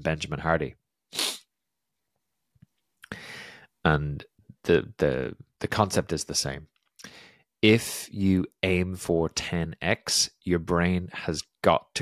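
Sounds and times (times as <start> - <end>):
sharp breath into microphone: 3.1 - 3.7.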